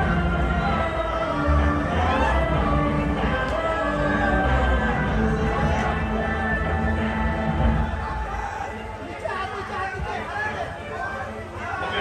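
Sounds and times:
chatter of voices in a hall: 0:00.0 - 0:12.0
music: 0:00.0 - 0:12.0.

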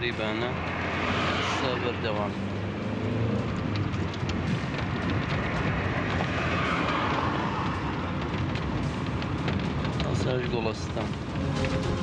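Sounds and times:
road rushing noise: 0:00.0 - 0:12.0
vehicle engine low rumble: 0:00.0 - 0:12.0.

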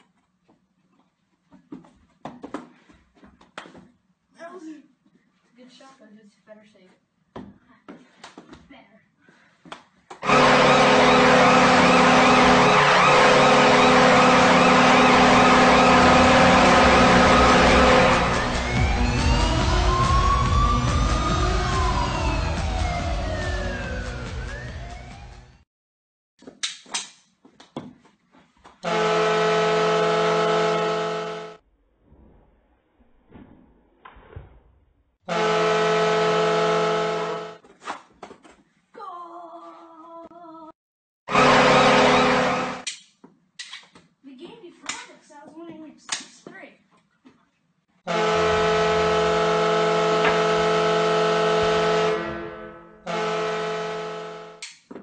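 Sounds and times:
goal horn blast: 0:10.2 - 0:24.6, 0:28.8 - 0:31.6, 0:35.3 - 0:37.6, 0:41.3 - 0:42.8, 0:48.0 - 0:54.7
sweeping rising and falling tones: 0:10.4 - 0:25.5.

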